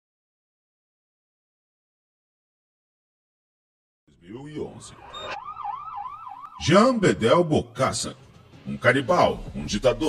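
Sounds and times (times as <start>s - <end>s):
warbling siren: 4.7s - 7.0s.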